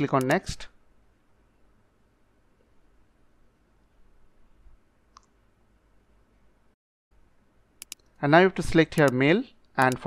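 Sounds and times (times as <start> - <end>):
computer mouse click: 0.2 - 0.4, 7.8 - 8.1.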